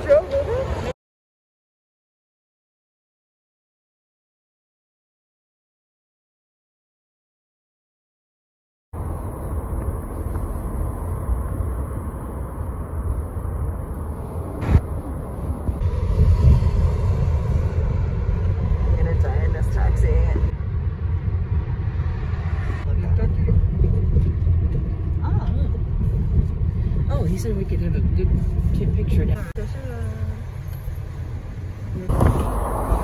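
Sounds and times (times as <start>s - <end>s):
road and engine rumble in car: 0.0s - 1.0s, 9.0s - 33.0s.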